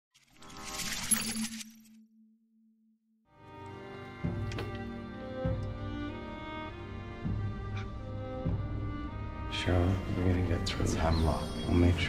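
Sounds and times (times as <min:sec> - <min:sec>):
bright noisy shimmer: 0:10.6 - 0:12.0.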